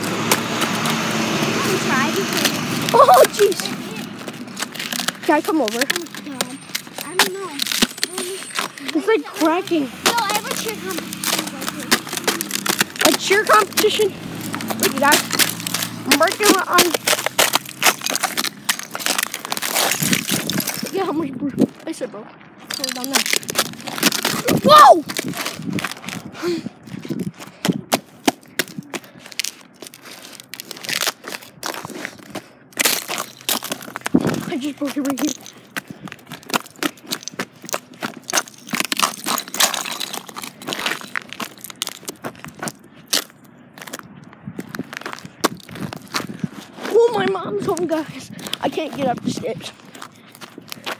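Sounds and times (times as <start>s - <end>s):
footsteps crunching icy snow: 0.0s - 50.9s.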